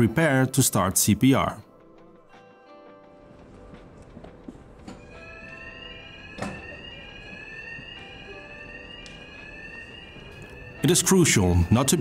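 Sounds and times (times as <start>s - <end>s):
rising electronic alarm tone: 5.0s - 12.0s.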